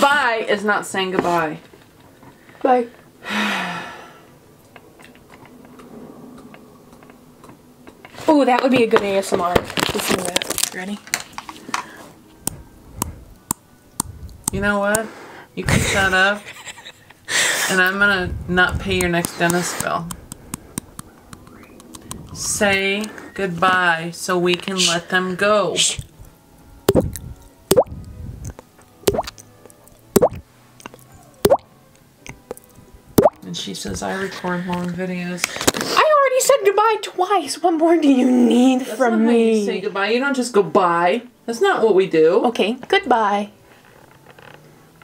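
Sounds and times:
finger flicked cheek mouth pops: 26.9 - 31.7, 32.3 - 33.4
evenly spaced taps: 29.1 - 29.3.

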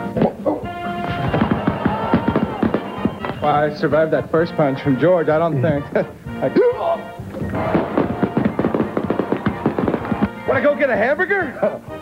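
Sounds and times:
background music with held tones: 0.0 - 12.0.

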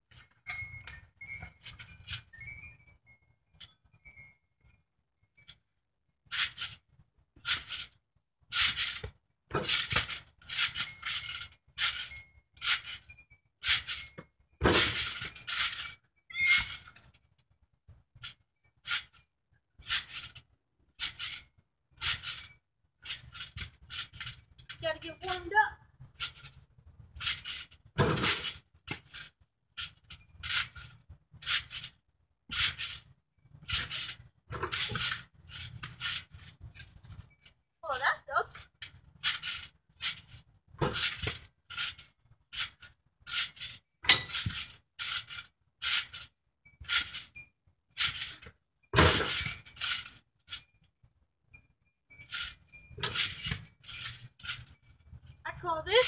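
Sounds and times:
trampoline springs jangling: 0.1 - 56.0.

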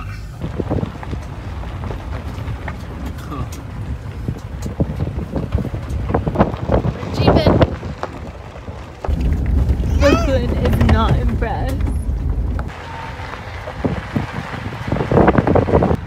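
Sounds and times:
vehicle rumble on dirt road: 0.0 - 16.0
wind buffeting microphone: 0.0 - 16.0
knocks and rattles: 0.4 - 16.0
person's voice: 9.9 - 11.8.

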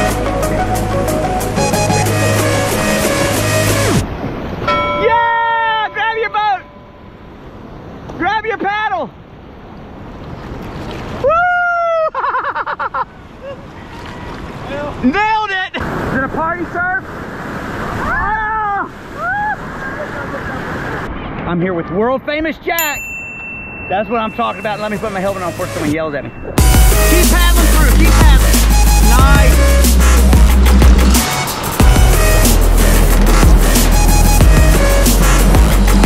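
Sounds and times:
music: 0.0 - 4.0, 24.7 - 26.0, 26.6 - 36.0
rushing whitewater: 0.0 - 11.6, 13.2 - 22.1, 22.7 - 36.0
drawn-out shouts or whoops: 5.0 - 6.6, 11.2 - 12.3, 18.0 - 20.0.

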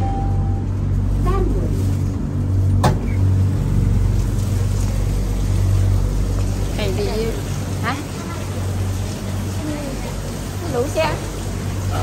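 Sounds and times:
vehicle humming: 0.0 - 12.0.

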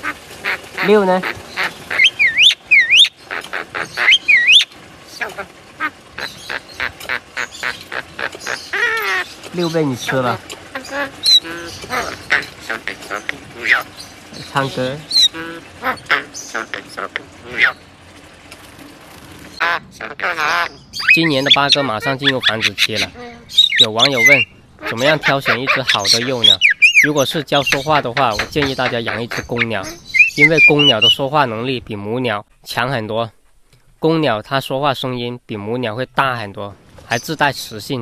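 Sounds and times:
bird sharp call notes: 0.0 - 9.8, 19.6 - 31.2
bird whistle dipping and rising: 0.8 - 10.2, 10.8 - 18.0, 20.3 - 31.3.

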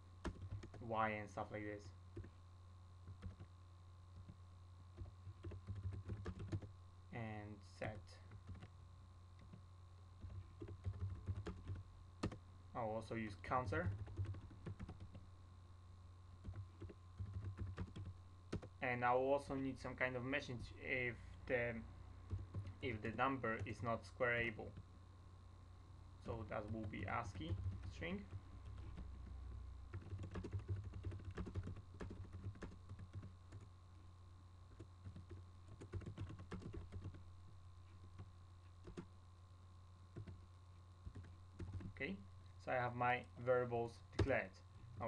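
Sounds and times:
steady low hum: 0.0 - 45.0
keyboard typing: 0.2 - 0.8, 3.1 - 3.5, 5.0 - 6.7, 10.2 - 12.4, 13.8 - 15.2, 16.4 - 18.7, 26.2 - 33.7, 34.7 - 37.2, 38.2 - 39.1, 41.0 - 42.0.

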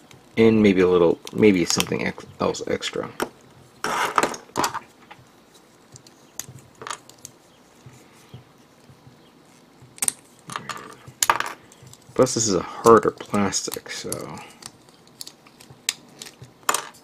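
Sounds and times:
plastic parts clicking: 10.0 - 17.0.

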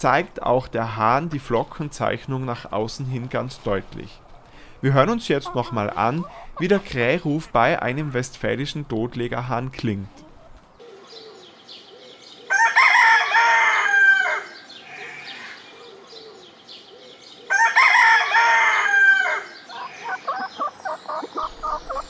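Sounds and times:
chicken clucking: 5.0 - 9.1, 9.9 - 10.7, 19.7 - 22.0
rooster crowing: 12.5 - 15.6, 17.5 - 20.7.

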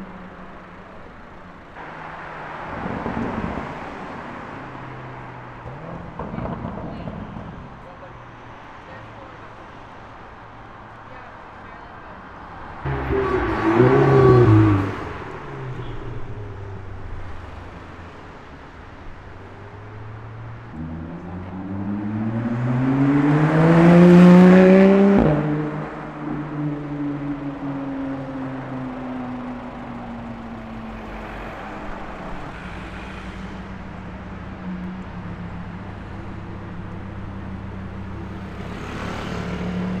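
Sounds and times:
sports car engine revving: 12.8 - 16.8, 20.7 - 26.2
car accelerating past: 12.8 - 18.0, 20.0 - 29.4, 36.9 - 40.0.

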